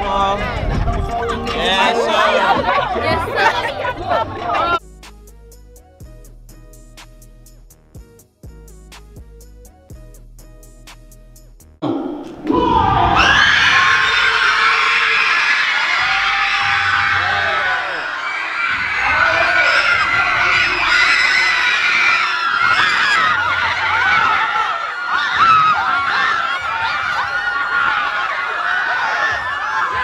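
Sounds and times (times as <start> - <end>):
crowd shouting and screaming: 0.0 - 4.8, 11.8 - 30.0.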